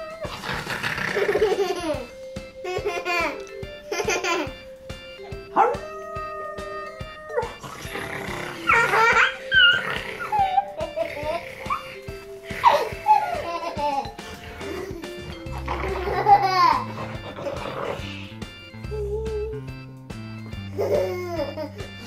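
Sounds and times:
background music: 0.0s - 22.0s
man imitating wolf noises: 5.6s - 12.0s.

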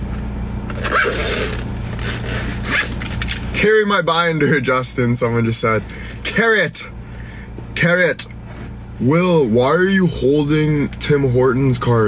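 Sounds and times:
steady low hum: 0.0s - 12.0s
binder scraping rasp: 0.8s - 3.1s.

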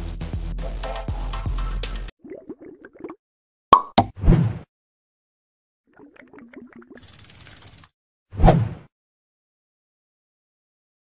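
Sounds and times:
ratchet-like clicking: 7.0s - 7.9s.

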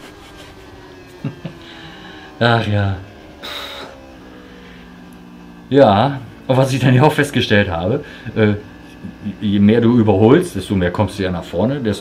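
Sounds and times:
racing motorcycle engine: 0.0s - 12.0s.

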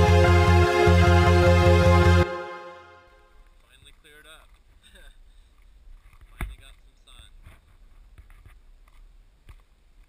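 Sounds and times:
outdoor background noise: 3.0s - 10.0s.

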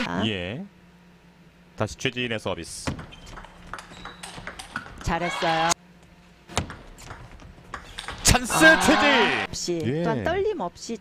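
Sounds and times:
table tennis ball clicking: 2.9s - 5.2s, 6.6s - 8.4s.

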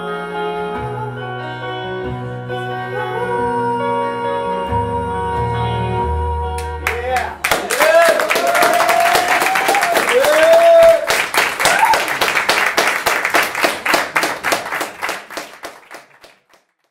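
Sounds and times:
audience clapping: 6.6s - 16.9s
whoops of cheering: 6.9s - 12.2s.

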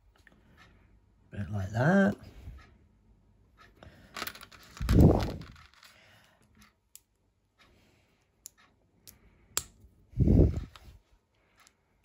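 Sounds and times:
plastic pieces clicking: 4.1s - 6.0s.

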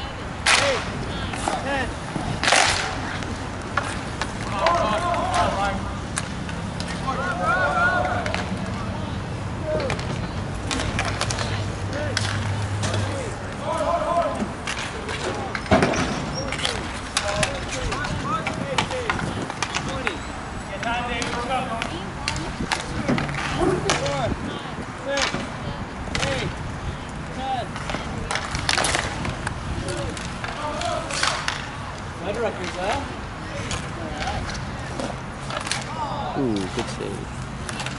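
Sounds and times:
players shouting: 0.0s - 37.9s
hockey sticks and puck clacking: 0.4s - 37.9s
inline skate wheels rolling: 0.6s - 36.8s.

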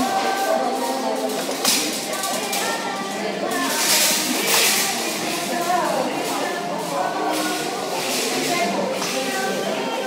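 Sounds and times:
background music: 0.0s - 10.0s
indistinct voices talking: 0.0s - 10.0s.

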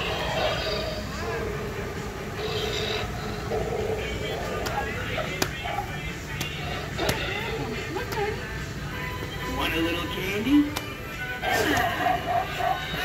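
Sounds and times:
background music: 0.0s - 13.0s
indistinct voices: 0.0s - 13.0s.

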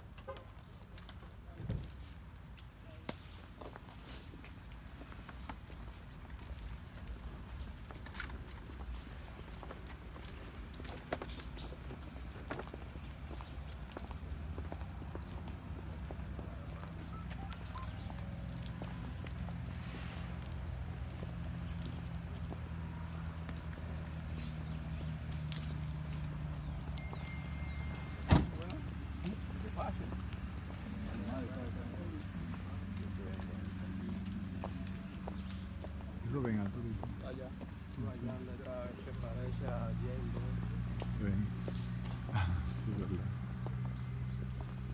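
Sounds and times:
footsteps on pavement: 0.0s - 44.9s
low voices: 28.3s - 43.5s.

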